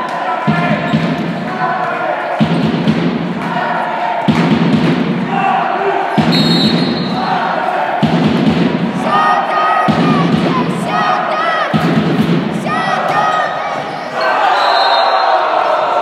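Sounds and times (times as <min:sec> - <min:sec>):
players' voices: 0:00.0 - 0:16.0.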